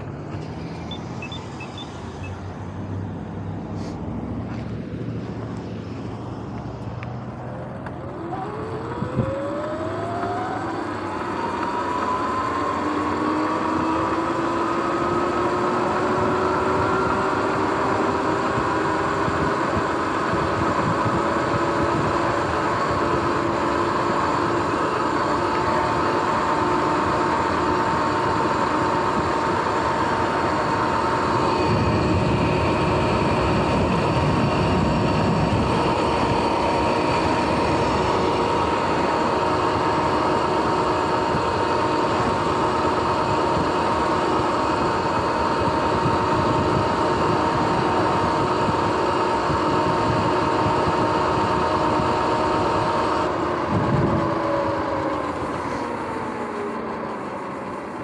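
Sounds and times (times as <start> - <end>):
road and wind noise: 0.0 - 58.0
electric motor whine: 4.5 - 58.0.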